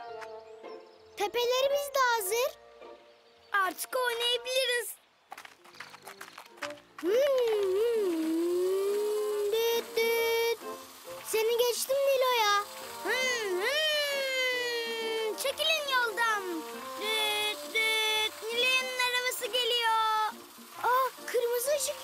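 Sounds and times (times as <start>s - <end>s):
light background music: 0.0s - 22.0s
toy cars pushed on sand: 5.7s - 22.0s
children making engine noises: 7.0s - 22.0s.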